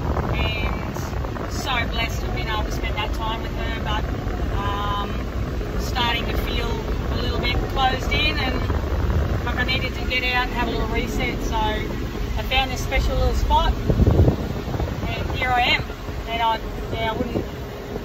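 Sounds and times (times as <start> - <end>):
engine and tyre rumble: 0.0 - 18.0
wind noise: 0.0 - 18.0.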